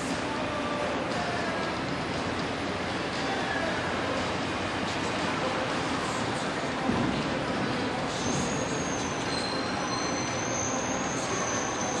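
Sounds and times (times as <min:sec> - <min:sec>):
outdoor background noise: 0:00.0 - 0:12.0
thin high whistle: 0:08.1 - 0:12.0.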